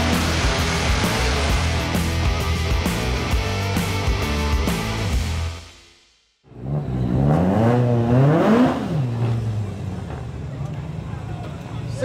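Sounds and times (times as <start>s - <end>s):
rally car engine revving: 0.0s - 5.3s, 6.5s - 10.6s.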